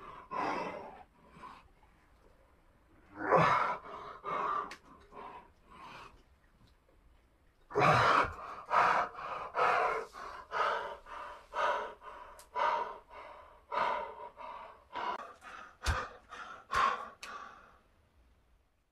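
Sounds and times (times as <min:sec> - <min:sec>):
man panting hard: 0:07.8 - 0:17.9.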